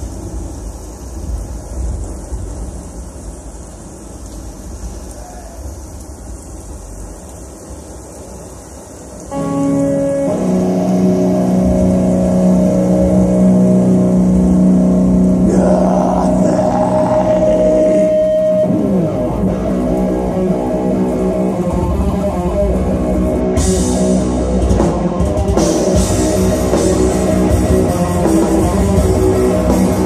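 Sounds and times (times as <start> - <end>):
distorted electric guitars droning: 9.2 - 30.0
black metal band playing live: 9.3 - 30.0.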